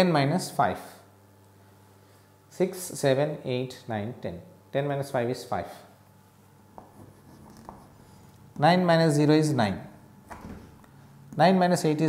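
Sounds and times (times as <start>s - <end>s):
chalk scraping on blackboard: 6.8s - 8.2s.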